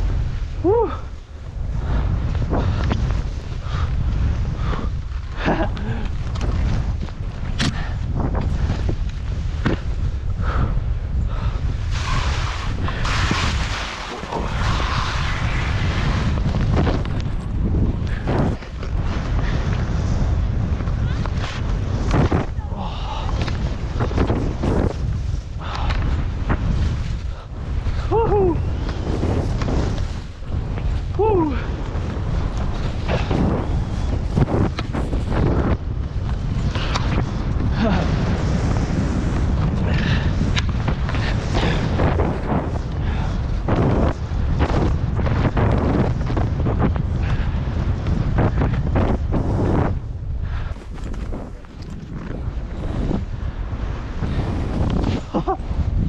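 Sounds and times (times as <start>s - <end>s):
wind buffeting microphone: 0.0s - 56.0s
skis swishing through snow: 11.6s - 55.9s.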